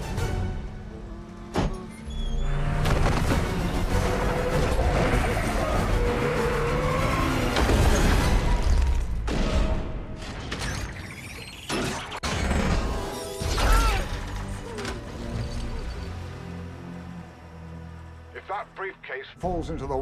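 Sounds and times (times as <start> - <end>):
action film music: 0.0 - 20.0.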